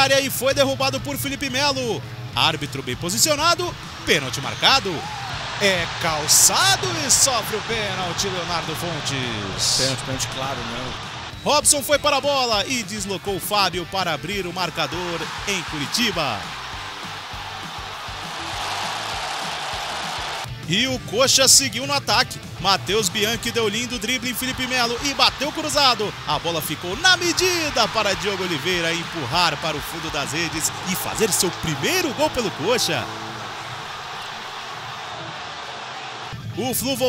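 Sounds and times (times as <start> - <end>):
stadium crowd roar: 0.0 - 20.5, 21.8 - 37.0
background music with steady beat: 0.0 - 37.0.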